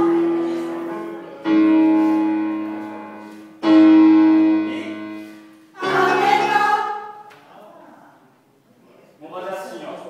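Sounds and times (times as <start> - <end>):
keyboard chord: 0.0 - 6.9
mixed choir singing chord: 5.6 - 7.2.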